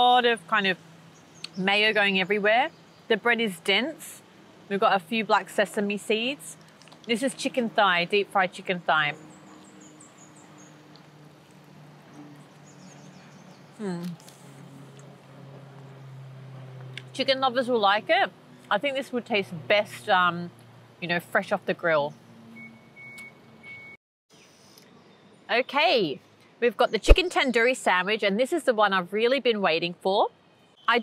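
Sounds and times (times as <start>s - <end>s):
small bird chirping: 1.1s - 3.1s, 9.1s - 14.6s.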